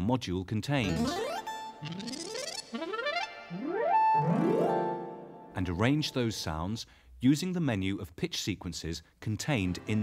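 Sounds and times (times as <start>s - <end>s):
rising synthesizer pitch glides: 0.9s - 6.1s.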